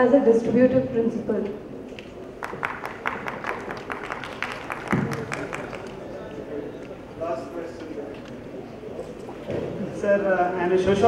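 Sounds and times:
people clapping: 1.9 - 7.0.

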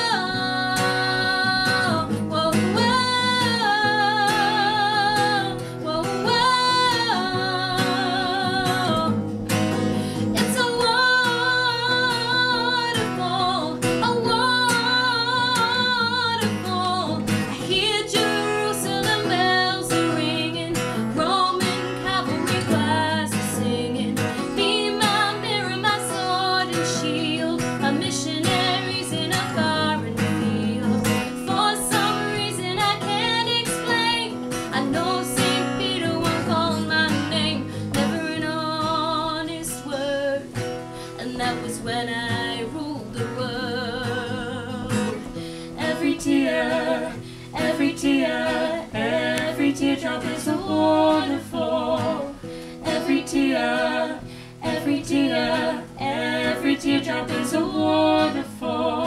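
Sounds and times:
acoustic guitar strumming: 0.0 - 59.0
woman singing: 0.0 - 59.0.

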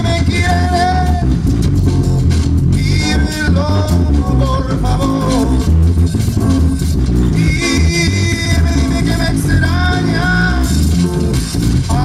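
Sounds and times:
person singing: 0.0 - 1.4, 2.8 - 5.8, 7.3 - 10.8
live band music: 0.0 - 12.0.

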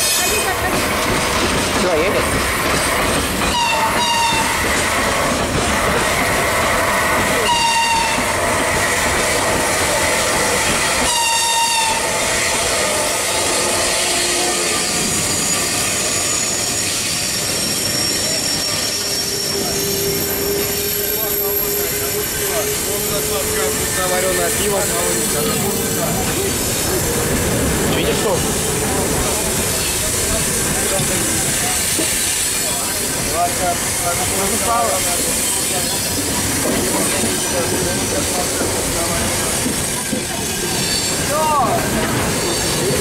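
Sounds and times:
train wheels rumbling on rails: 0.0 - 43.0.

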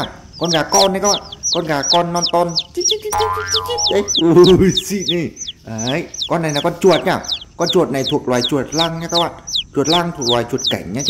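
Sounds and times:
baby chick peeping: 0.0 - 11.0
cartoon boing effect: 3.1 - 4.2.

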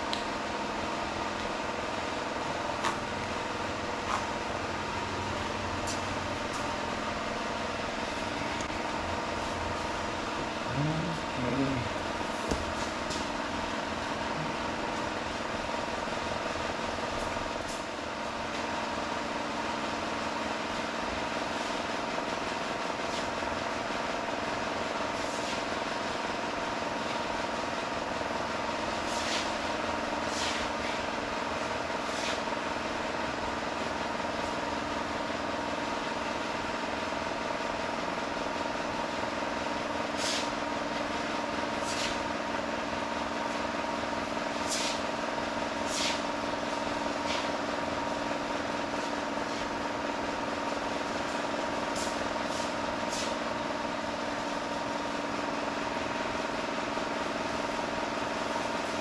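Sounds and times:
machine humming: 0.0 - 24.8.

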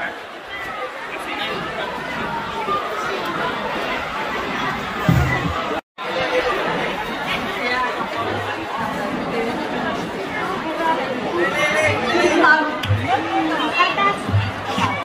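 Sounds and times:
crowd chattering: 0.0 - 15.0
low thuds: 5.0 - 5.8.

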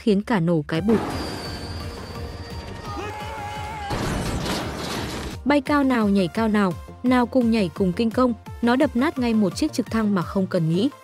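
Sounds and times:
background music: 0.0 - 11.0
rumbling crash effects: 3.9 - 5.4.

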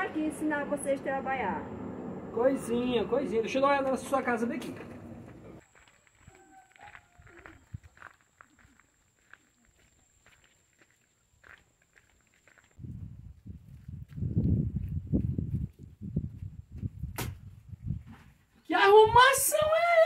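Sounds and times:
footsteps on dirt path: 3.8 - 18.5.

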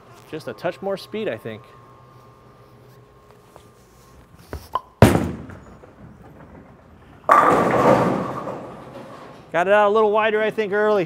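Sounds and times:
bowling ball thud on lane: 5.0 - 9.4
bowling pins crashing: 5.0 - 9.6.

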